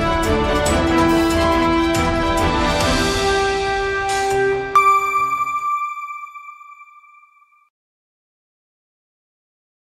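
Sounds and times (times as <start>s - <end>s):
bell-like chime tone: 4.8s - 7.7s.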